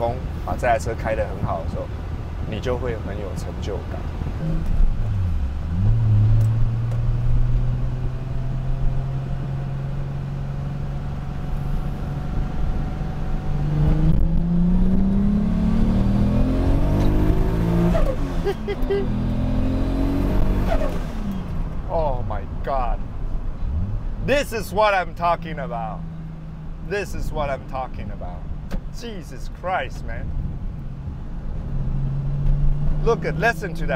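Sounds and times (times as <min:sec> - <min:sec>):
car engine revving: 0:04.2 - 0:21.8, 0:30.4 - 0:33.9.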